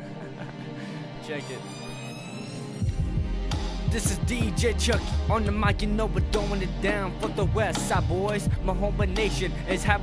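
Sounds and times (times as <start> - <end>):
hip hop instrumental beat: 0.0 - 10.0
sliding deep bass notes: 2.9 - 10.0.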